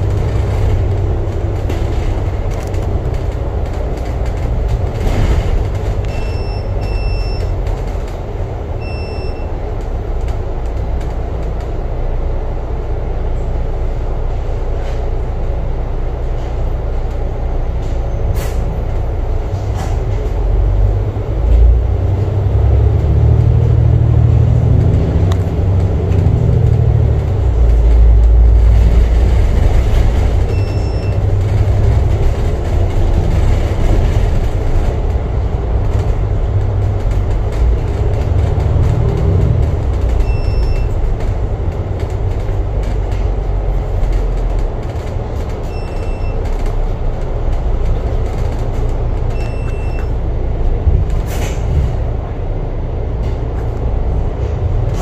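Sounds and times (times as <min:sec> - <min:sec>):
bus diesel engine rumble: 0:00.0 - 0:55.0.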